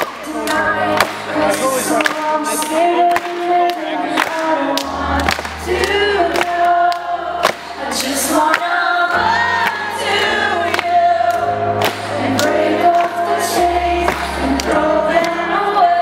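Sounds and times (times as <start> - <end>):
woman singing: 0.0 - 16.0.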